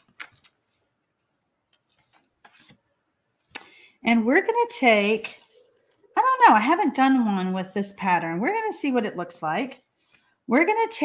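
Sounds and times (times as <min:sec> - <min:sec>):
paper rustling and tapping: 0:00.0 - 0:02.9.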